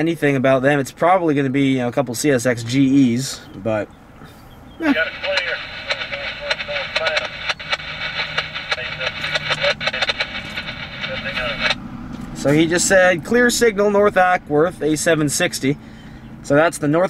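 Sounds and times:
hissy radio voice: 4.8 - 11.8.

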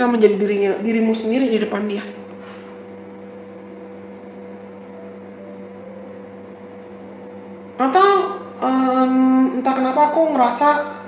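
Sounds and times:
steady two-tone hum: 0.0 - 11.0.

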